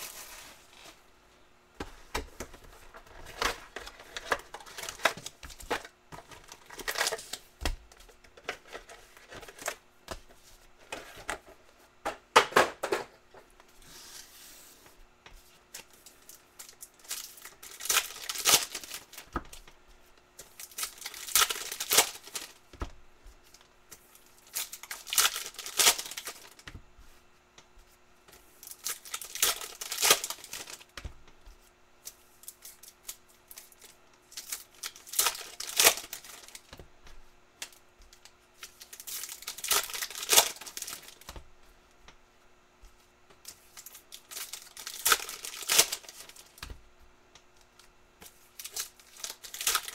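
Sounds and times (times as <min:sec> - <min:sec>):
foil packs tearing: 0:03.2 - 0:07.4, 0:16.8 - 0:19.3, 0:20.6 - 0:22.6, 0:24.4 - 0:26.6, 0:28.6 - 0:30.9, 0:34.4 - 0:36.6, 0:38.8 - 0:41.2, 0:43.8 - 0:46.6, 0:48.6 - 0:49.9
wrappers crinkling: 0:15.8 - 0:19.3, 0:20.4 - 0:22.6, 0:24.4 - 0:26.6, 0:28.6 - 0:30.9, 0:32.4 - 0:36.6, 0:38.6 - 0:41.3, 0:43.5 - 0:46.6, 0:48.5 - 0:49.9.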